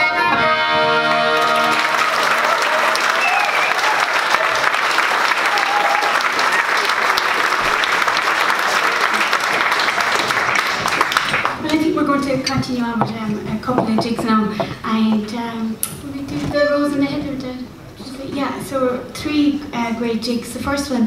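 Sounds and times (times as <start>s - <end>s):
traditional folk tune: 0.0s - 2.0s
audience applauding: 1.0s - 11.7s.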